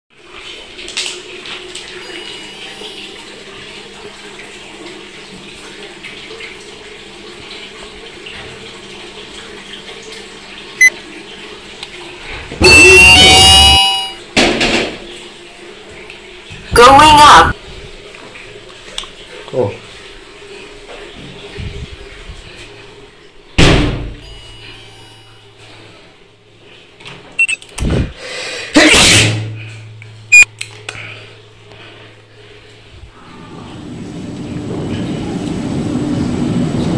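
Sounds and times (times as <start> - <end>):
electronic beep: 2.0 - 3.2, 12.9 - 14.2, 24.2 - 25.4, 27.4 - 27.6, 30.3 - 30.5
door banging shut: 23.6 - 24.2.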